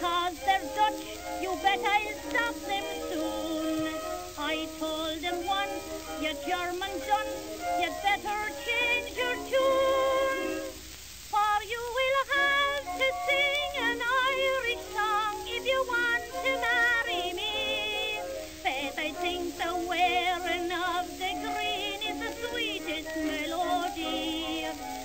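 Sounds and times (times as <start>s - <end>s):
woman singing with vibrato: 0.0s - 25.0s.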